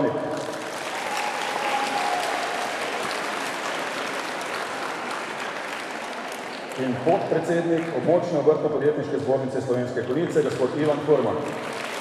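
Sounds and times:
audience applauding: 0.0s - 8.0s, 10.8s - 12.0s.

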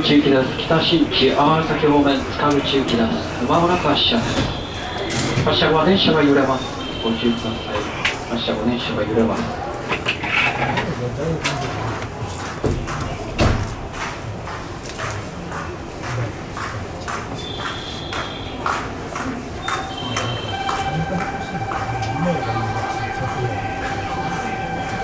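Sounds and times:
pulsing electronic tone: 19.8s - 25.0s.

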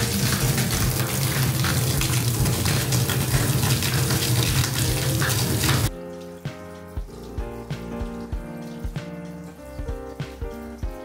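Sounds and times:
shower water pouring: 0.0s - 11.0s.

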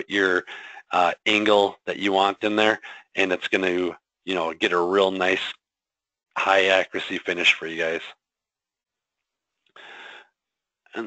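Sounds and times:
short breath near microphone: 0.5s - 0.9s, 2.8s - 3.2s, 9.8s - 10.4s.

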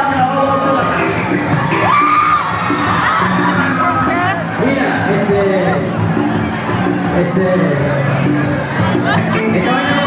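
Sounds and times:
live pop band playing loudly: 0.0s - 10.0s.

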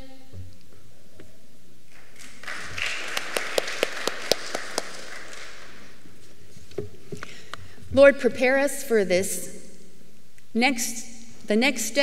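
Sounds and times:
congregation applause: 1.9s - 6.0s.

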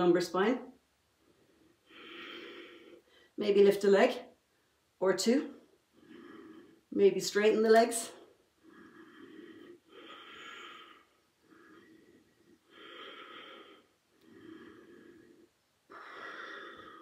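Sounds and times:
woman breathing slowly: 1.2s - 3.4s, 5.6s - 7.0s, 8.2s - 17.0s.

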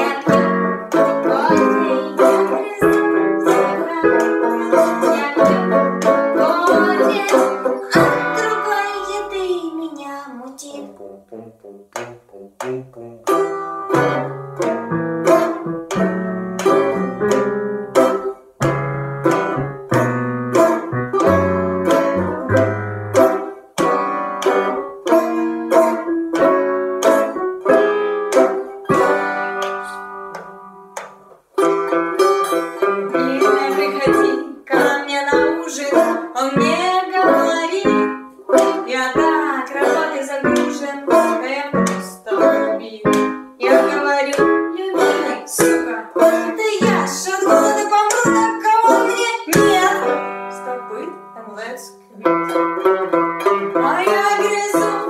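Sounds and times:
banjo picking a tune: 0.0s - 9.8s, 10.7s - 55.0s.

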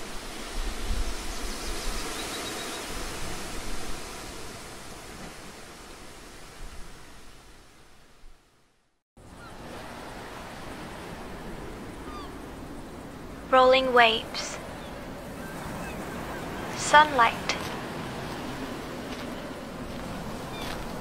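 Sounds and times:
ocean surf rushing: 0.0s - 8.2s, 9.2s - 21.0s
faint bird chirps: 12.0s - 12.4s.

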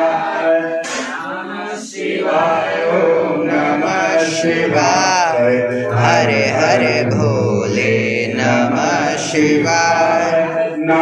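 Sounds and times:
voices chanting mantras: 0.0s - 11.0s.

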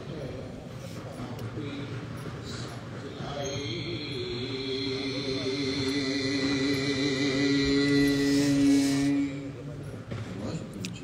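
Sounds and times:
steady low drone: 3.7s - 9.9s
long held wavering note: 5.7s - 9.7s.

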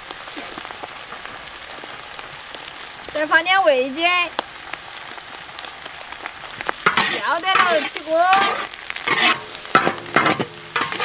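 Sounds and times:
greens sizzling: 0.0s - 11.0s
metal ladle scraping a wok: 6.8s - 11.0s.

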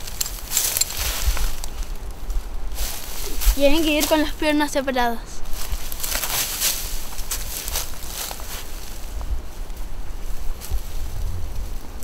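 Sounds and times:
rope rustling: 0.0s - 4.3s, 5.5s - 12.0s
leaf litter shifting underfoot: 0.0s - 4.4s, 5.4s - 12.0s.

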